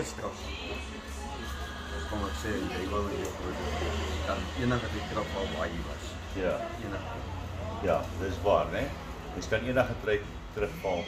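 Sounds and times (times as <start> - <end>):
man speaking: 2.0 - 7.2.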